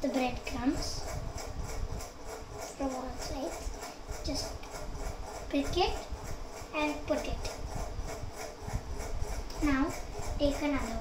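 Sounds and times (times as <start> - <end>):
person speaking indistinctly: 0.0 - 1.2, 2.6 - 7.7, 9.4 - 11.0.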